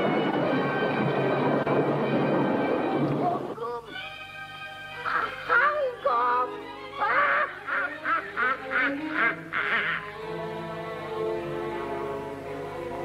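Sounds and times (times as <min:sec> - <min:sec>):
orchestral music: 0:00.0 - 0:07.0, 0:10.0 - 0:13.0
witch's shrill cackling laugh: 0:07.0 - 0:10.2.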